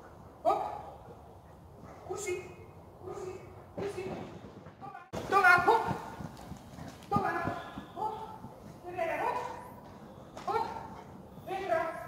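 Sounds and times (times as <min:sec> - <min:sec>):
running footfalls on sand: 0:05.1 - 0:11.2.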